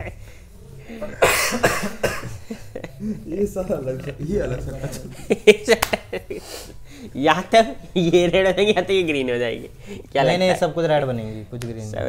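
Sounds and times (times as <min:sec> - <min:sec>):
person coughing: 0:01.0 - 0:02.5.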